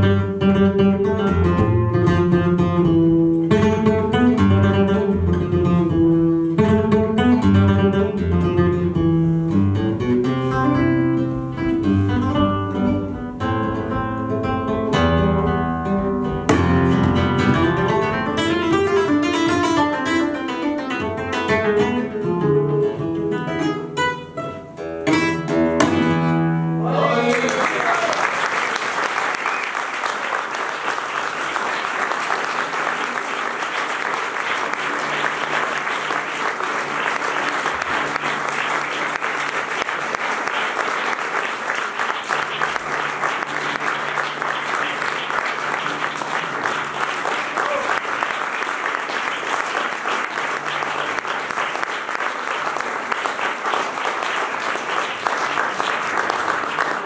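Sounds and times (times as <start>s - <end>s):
flamenco guitar chord: 0.0s - 26.8s
audience applauding: 26.9s - 57.0s.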